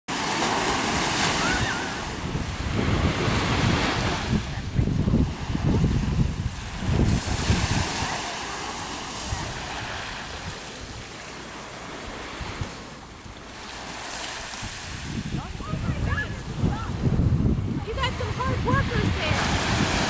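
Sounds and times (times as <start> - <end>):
ocean surf breaking: 0.1 - 20.0
wind buffeting microphone: 0.1 - 20.0.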